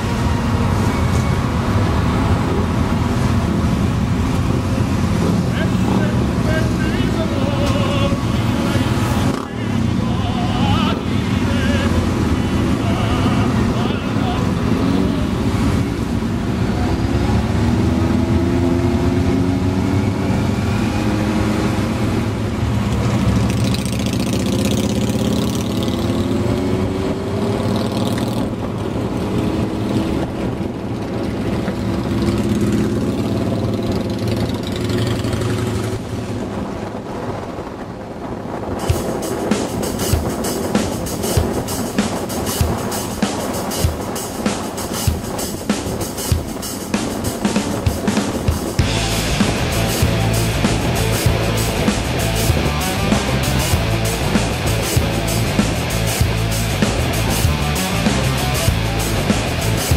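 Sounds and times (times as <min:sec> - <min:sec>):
motorcycle engines: 0:00.0 - 0:59.9
wind: 0:00.0 - 0:59.9
music with steady beat: 0:38.8 - 0:59.9.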